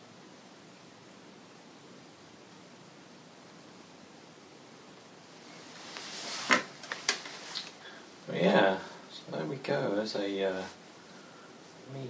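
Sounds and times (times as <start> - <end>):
rustle of handling: 5.3 - 8.0.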